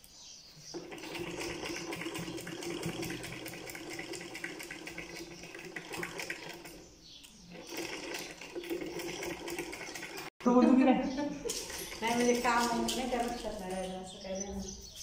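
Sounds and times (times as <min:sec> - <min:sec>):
sewing machine stitching: 0:00.7 - 0:06.9, 0:07.5 - 0:10.3, 0:11.6 - 0:13.4.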